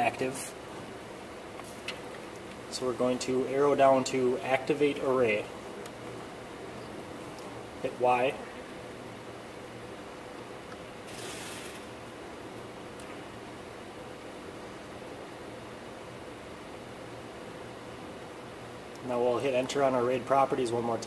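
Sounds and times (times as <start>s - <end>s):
faint steady hum: 0.0s - 21.0s
server cooling fans whirring: 0.0s - 21.0s.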